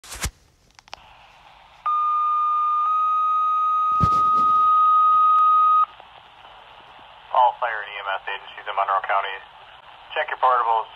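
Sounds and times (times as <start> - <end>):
radio hiss: 1.0 - 1.9, 5.9 - 10.9
two-tone pager tones: 1.9 - 5.9.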